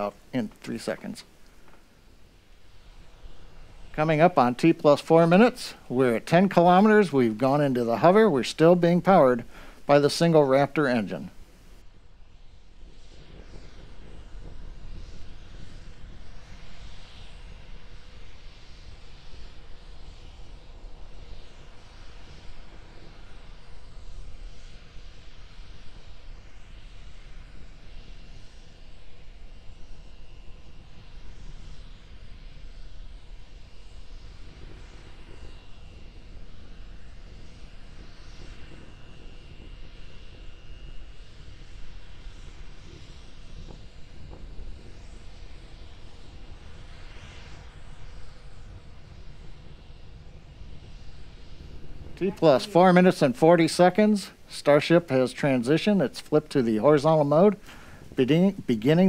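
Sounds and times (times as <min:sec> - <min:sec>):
distant rocket engine rumble: 0:00.0 - 0:59.0
faint high tone: 0:52.2 - 0:53.5.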